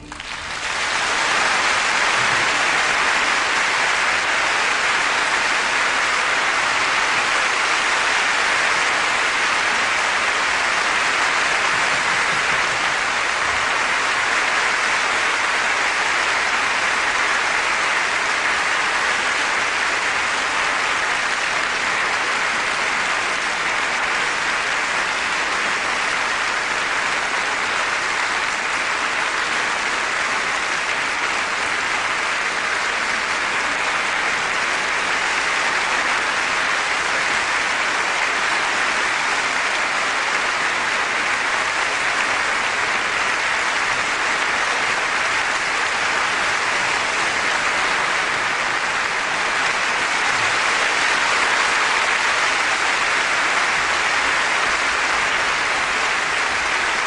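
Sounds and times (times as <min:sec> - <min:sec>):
audience applauding: 0:00.0 - 0:57.0.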